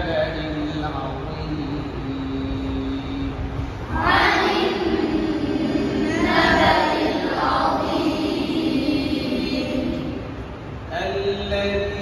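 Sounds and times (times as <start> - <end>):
man reciting a long note: 0.0 - 3.6
boys reciting together: 0.0 - 12.0
low steady rumble: 0.0 - 12.0.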